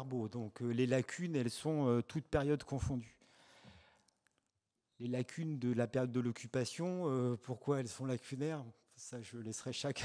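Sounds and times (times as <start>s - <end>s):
faint breath at microphone: 3.2s - 4.1s.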